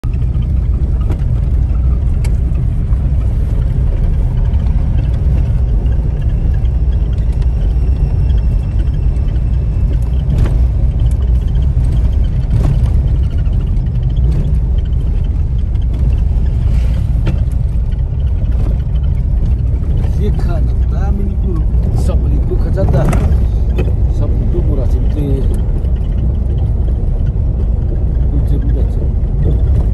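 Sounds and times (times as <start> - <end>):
car engine and road noise: 0.0 - 29.9.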